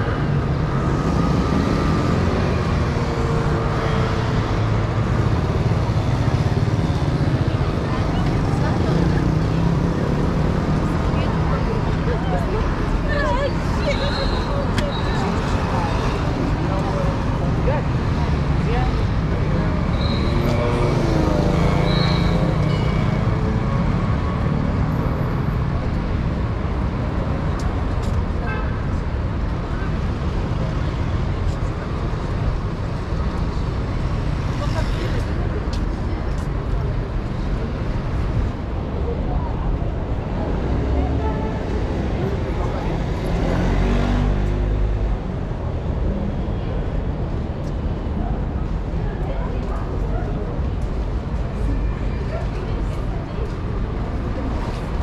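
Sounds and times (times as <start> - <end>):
din of cars and motor scooters: 0.0 - 55.0
voices of passers-by: 0.0 - 55.0.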